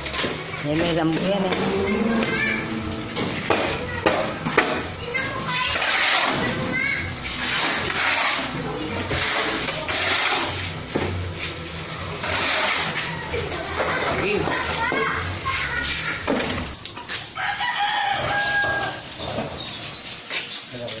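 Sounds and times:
people's voices: 0:00.0 - 0:10.7
rooster crowing: 0:17.4 - 0:19.2.

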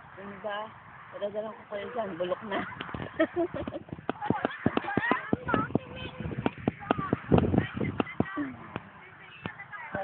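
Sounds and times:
woman laughing: 0:02.5 - 0:05.3.

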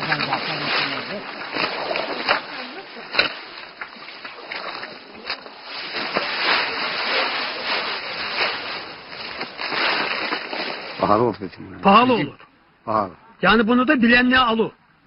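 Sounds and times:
rice stalks being cut by hand: 0:04.3 - 0:11.0.

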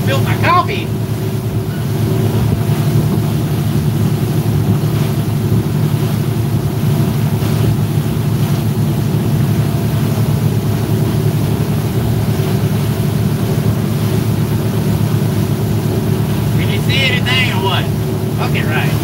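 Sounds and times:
motorboat engines droning: 0:00.0 - 0:19.0.

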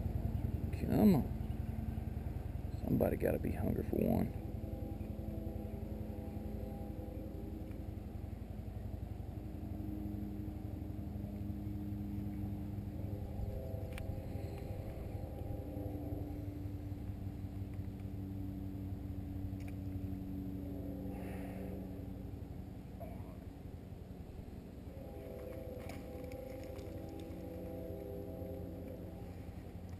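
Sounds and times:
distant engine droning: 0:00.0 - 0:29.9
low rumble: 0:00.0 - 0:29.9.

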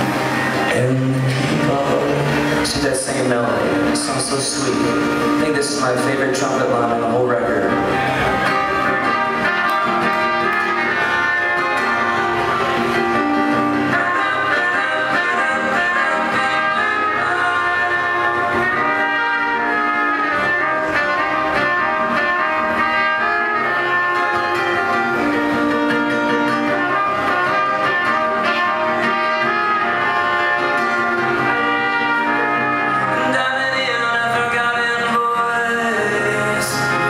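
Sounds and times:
electric and acoustic guitars: 0:00.0 - 0:37.0
trumpets playing melody: 0:00.0 - 0:37.0.

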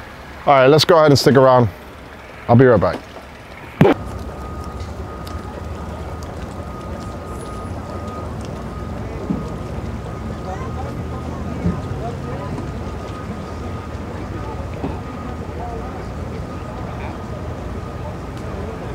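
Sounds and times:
faint steady whine: 0:00.0 - 0:18.9
engine idling: 0:04.0 - 0:18.9
faint distant voices: 0:04.2 - 0:18.9.

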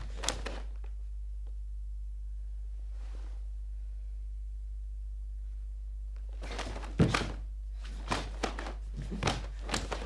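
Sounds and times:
steady low hum: 0:00.0 - 0:10.0
bare feet stamping on a mat: 0:06.4 - 0:10.0.

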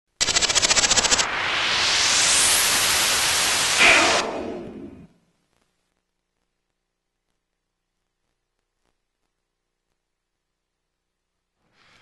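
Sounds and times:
rising whoosh: 0:00.9 - 0:05.1.

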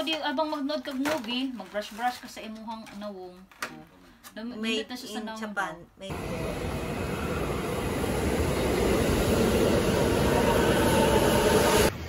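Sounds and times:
train rumbling past: 0:06.1 - 0:12.0.

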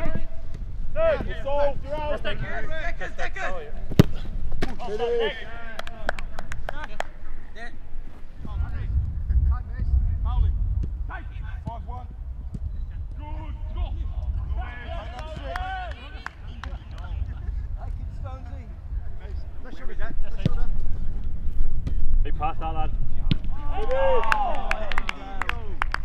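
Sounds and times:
low rumble: 0:08.4 - 0:15.2.

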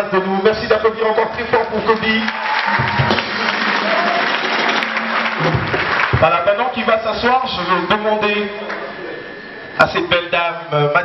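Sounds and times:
crowd applauding: 0:01.8 - 0:06.9.

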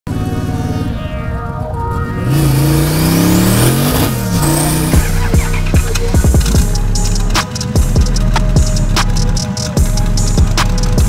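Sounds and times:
background music with a beat: 0:00.1 - 0:11.0
car engine under load: 0:00.1 - 0:11.0
high whine: 0:00.1 - 0:11.0.

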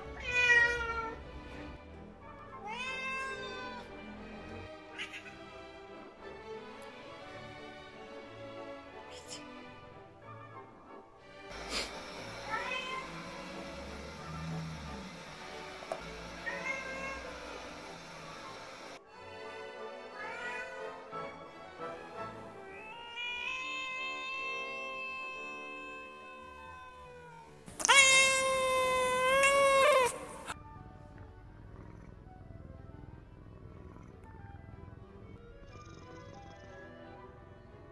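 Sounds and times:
cat meowing: 0:00.1 - 0:01.2, 0:02.5 - 0:04.1, 0:04.8 - 0:05.6, 0:11.6 - 0:15.0, 0:15.8 - 0:18.0, 0:20.1 - 0:20.9, 0:22.6 - 0:30.6.

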